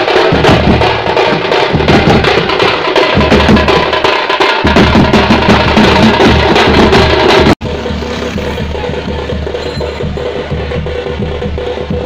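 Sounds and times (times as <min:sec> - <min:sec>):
fast stick-beaten drumming: 0:00.0 - 0:12.0.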